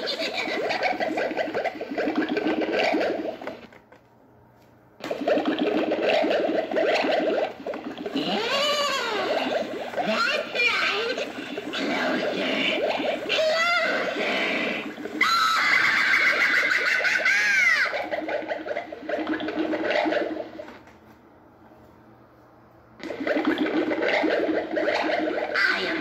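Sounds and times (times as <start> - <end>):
recorded witch voice: 8.2 - 14.6, 25.6 - 26.0
high sliding cries: 15.2 - 16.7.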